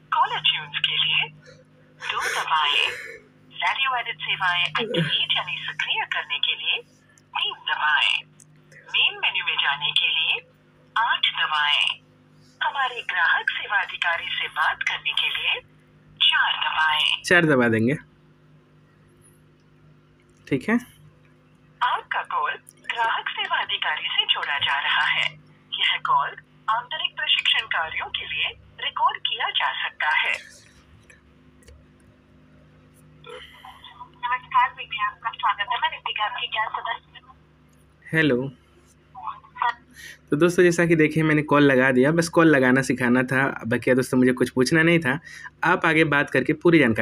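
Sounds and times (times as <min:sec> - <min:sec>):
person speaking over phone speaker: 0:00.1 - 0:10.4, 0:11.0 - 0:12.0, 0:12.6 - 0:15.6, 0:16.2 - 0:17.8, 0:21.8 - 0:30.9, 0:33.3 - 0:37.4, 0:39.2 - 0:39.8.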